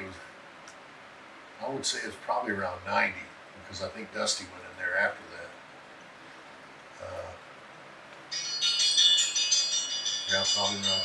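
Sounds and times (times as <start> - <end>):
high-pitched chiming melody: 8.3 - 11.0.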